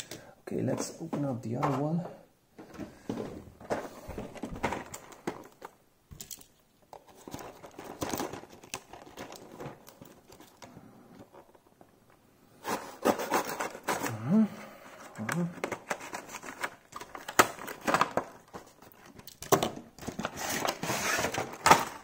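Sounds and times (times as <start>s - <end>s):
plastic packaging crinkling: 3.6s - 11.9s, 15.6s - 22.0s.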